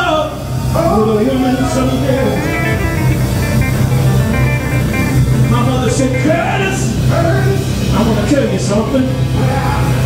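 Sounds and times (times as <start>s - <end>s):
bass guitar low notes: 0.0s - 10.0s
blues band playing: 0.0s - 10.0s.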